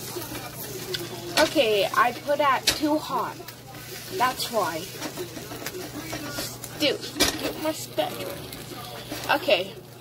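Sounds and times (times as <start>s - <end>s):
spatula scraping frying pan: 0.0s - 9.7s
faint sizzle: 0.0s - 10.0s.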